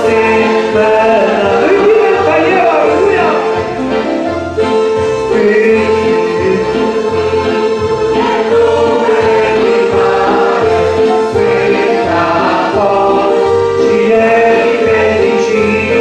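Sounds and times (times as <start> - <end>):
choir singing a hymn: 0.0 - 16.0.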